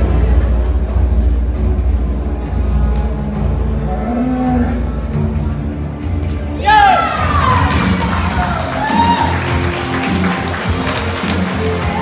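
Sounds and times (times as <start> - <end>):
cow mooing: 3.9 - 4.9
music with heavy bass: 6.8 - 12.0.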